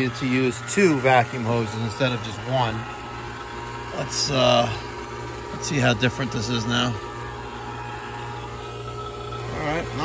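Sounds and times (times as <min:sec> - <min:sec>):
vacuum pump humming: 0:00.0 - 0:10.0.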